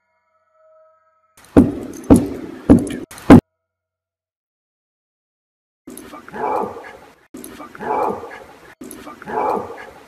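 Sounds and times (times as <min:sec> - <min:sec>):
bark-like animal call: 0:06.1 - 0:10.0.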